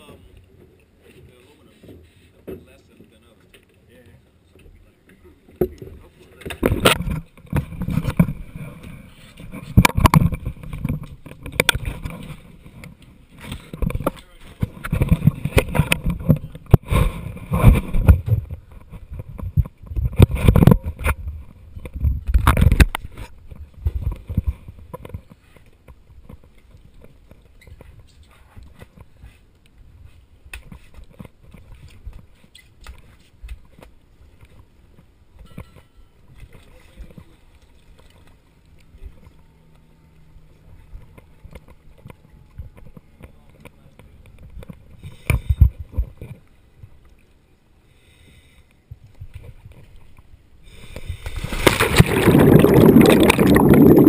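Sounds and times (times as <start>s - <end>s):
camera rubbing against scuba gear: 6.6s - 25.7s.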